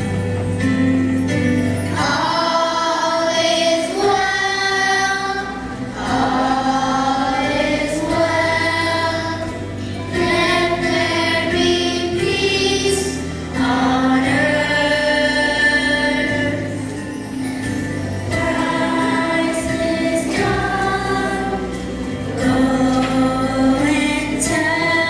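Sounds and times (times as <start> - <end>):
children singing: 1.9 - 25.0.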